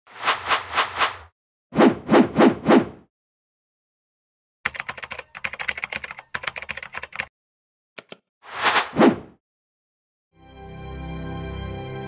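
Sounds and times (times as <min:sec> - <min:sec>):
keyboard typing clicks: 0:04.7 - 0:07.3, 0:08.0 - 0:08.3.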